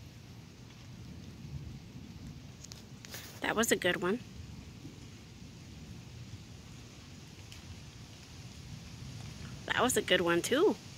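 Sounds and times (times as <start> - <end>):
faint steady rain: 0.0 - 10.9.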